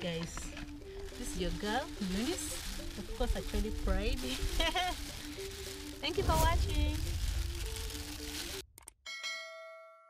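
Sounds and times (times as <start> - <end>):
background music: 0.0 - 8.9.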